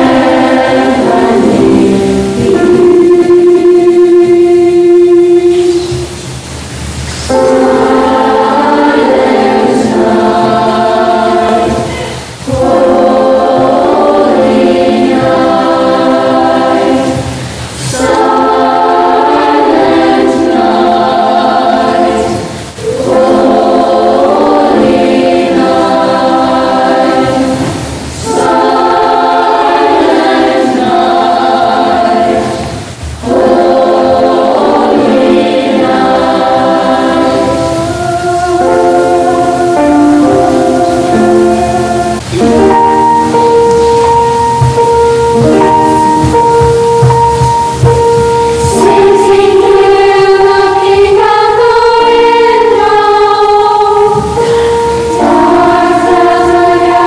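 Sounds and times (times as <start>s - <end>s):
children's choir singing: 0.0s - 57.0s.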